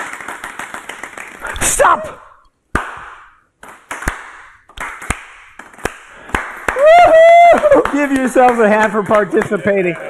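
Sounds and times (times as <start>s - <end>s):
sharp hand claps: 0.0s - 1.8s, 2.7s - 10.0s.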